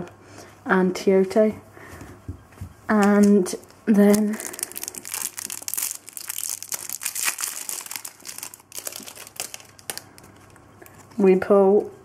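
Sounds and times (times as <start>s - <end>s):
card pack wrapper tearing and crinkling: 4.0s - 10.6s.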